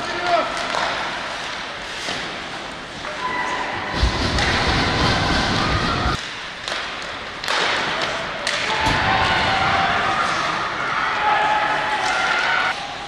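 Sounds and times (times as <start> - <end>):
hockey sticks and puck hitting: 0.0 - 5.1, 6.1 - 10.6, 11.8 - 13.0
crowd noise: 2.8 - 6.6, 7.2 - 13.0.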